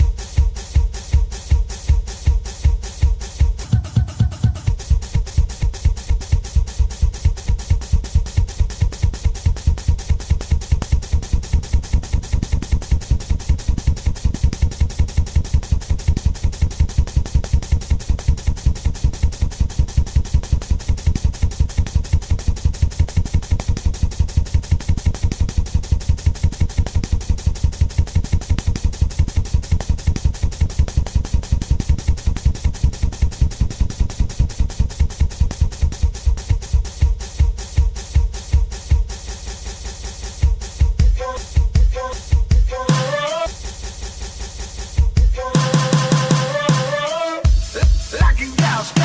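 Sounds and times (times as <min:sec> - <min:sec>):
rapid low thumping beat: 0:00.0 - 0:49.0.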